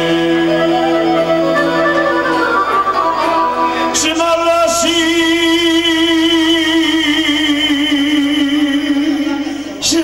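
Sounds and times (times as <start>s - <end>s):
man singing held note with vibrato: 0.0s - 2.4s.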